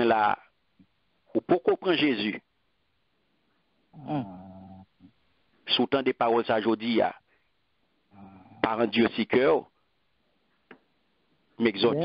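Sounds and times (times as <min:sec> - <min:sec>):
man humming: 0:04.0 - 0:04.8.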